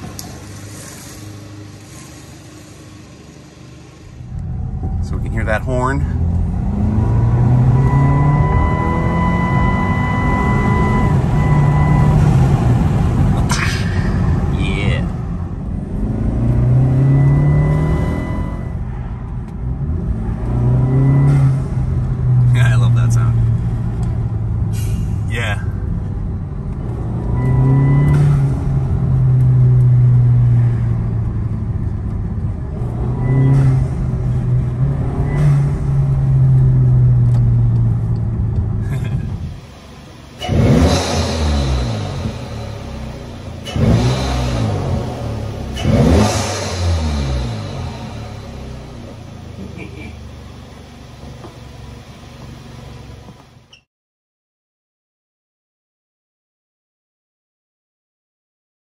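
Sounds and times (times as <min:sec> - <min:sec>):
car engine revving: 0:00.0 - 0:53.4
car engine accelerating through gears: 0:04.2 - 0:53.6.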